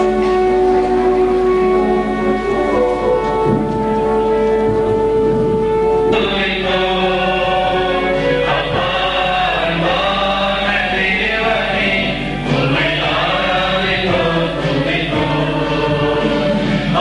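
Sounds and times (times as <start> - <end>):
choir singing a hymn: 0.0 - 17.0.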